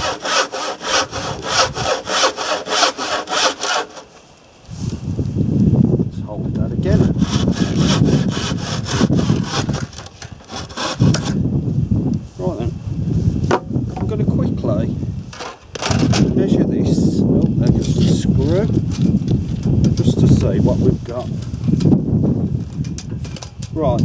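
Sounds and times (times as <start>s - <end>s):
handsaw cutting wood: 0.0s - 4.1s, 6.8s - 11.4s.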